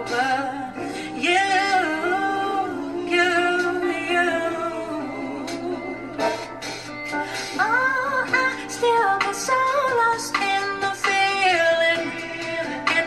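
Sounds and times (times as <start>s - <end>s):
quiet instrumental backing: 0.0s - 13.0s
woman singing soul ballad: 0.0s - 13.0s.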